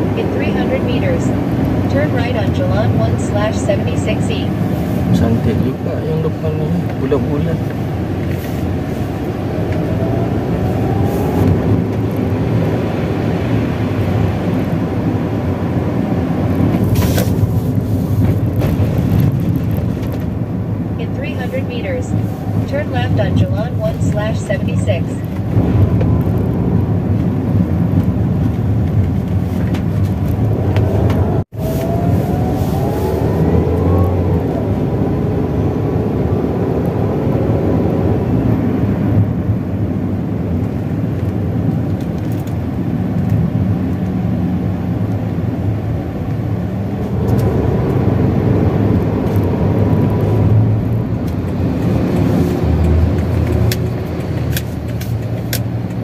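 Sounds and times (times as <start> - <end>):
car engine accelerating: 0.0 - 56.0
road noise inside car: 0.0 - 56.0.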